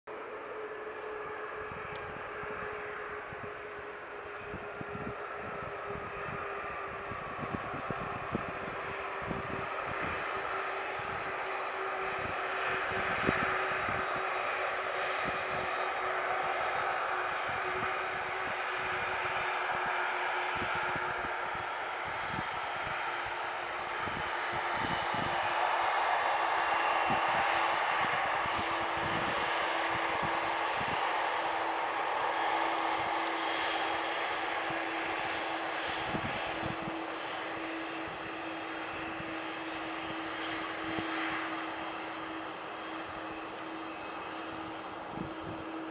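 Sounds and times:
jet engines roaring: 0.1 - 45.9.

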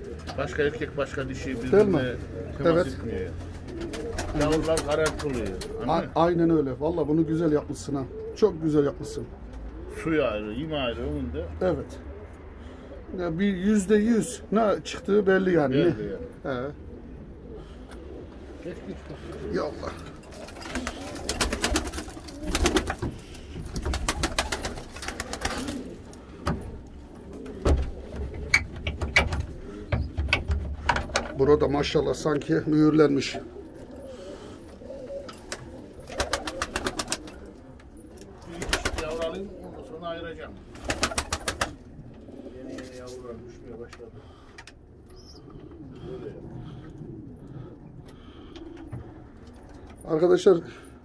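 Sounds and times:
pigeons cooing: 0.0 - 51.0
wings flapping and clicking: 3.3 - 5.9, 20.1 - 31.4, 35.2 - 39.5, 40.7 - 41.9.

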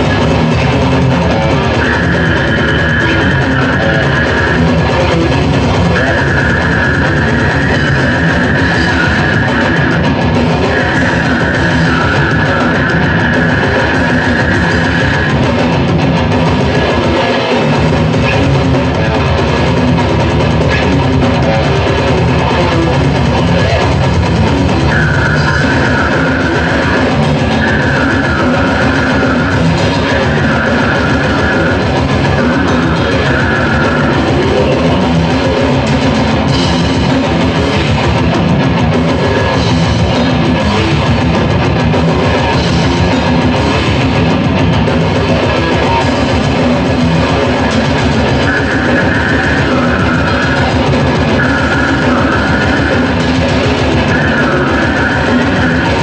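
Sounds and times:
death metal band playing: 0.0 - 56.0
high repeated guitar figure: 0.0 - 56.0.

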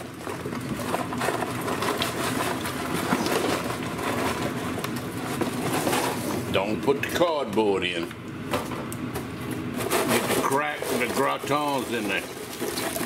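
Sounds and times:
pork sizzling in hot oil: 0.0 - 6.5, 10.4 - 13.0.

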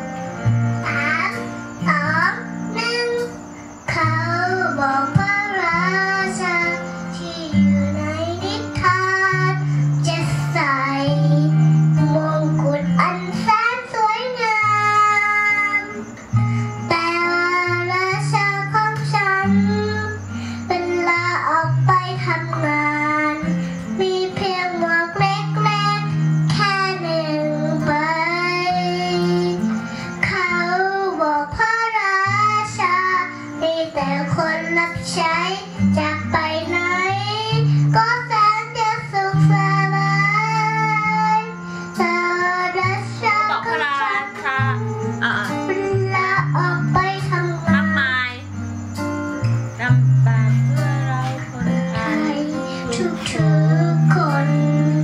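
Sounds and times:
instrumental accompaniment: 0.0 - 55.0
girl singing into microphone: 0.3 - 55.0.

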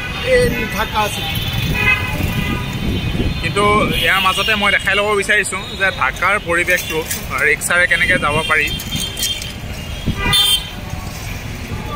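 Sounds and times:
street traffic rumble: 0.0 - 11.9
vehicle horn toot: 0.3 - 4.7, 8.1 - 10.7.

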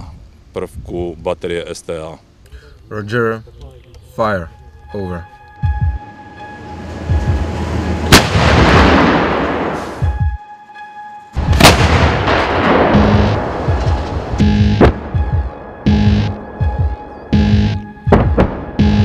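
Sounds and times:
long rolling echo: 4.6 - 19.0
music with throbbing beat: 5.4 - 7.6, 10.0 - 10.5, 12.6 - 19.0
howitzer muzzle blasts: 8.1 - 10.0, 11.5 - 14.2.

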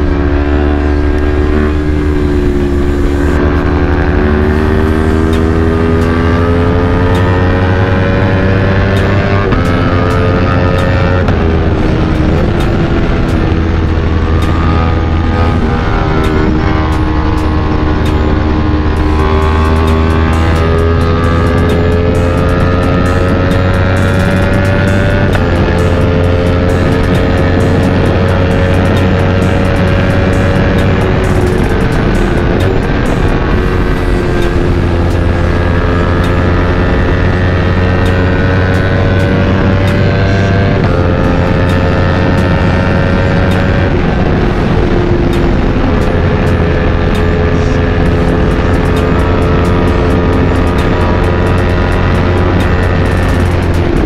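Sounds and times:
motorcycle engine accelerating: 0.0 - 54.0
wind rush: 0.0 - 54.0.

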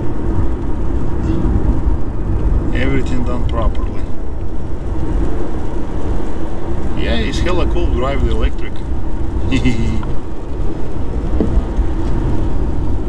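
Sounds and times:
road and tyre rumble: 0.0 - 13.0.

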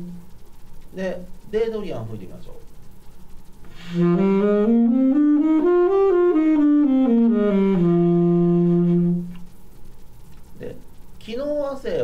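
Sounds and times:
alto saxophone low note: 3.8 - 9.4.

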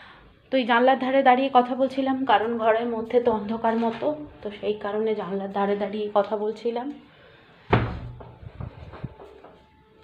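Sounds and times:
heavy thump: 7.7 - 9.2.

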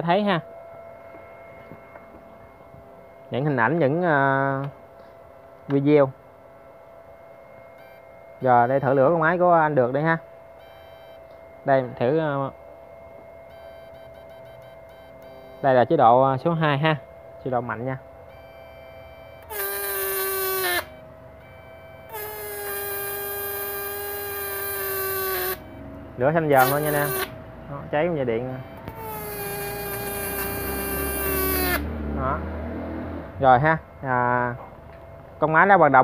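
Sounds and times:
electronic whine: 0.0 - 36.0.

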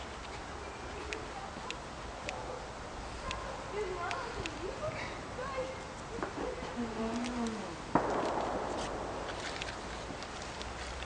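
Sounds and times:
paper burning crackle: 7.1 - 11.0
sharp bang: 7.9 - 10.0.

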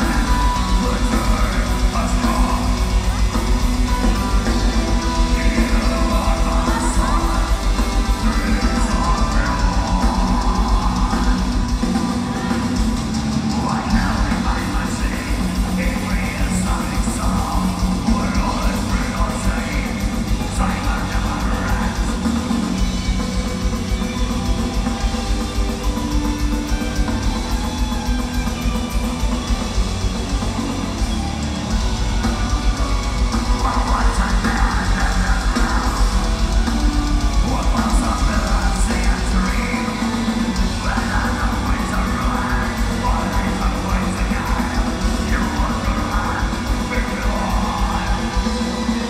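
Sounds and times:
distorted guitars: 0.0 - 49.0
drum kit beat: 0.0 - 49.0
metal band playing live: 0.0 - 49.0.

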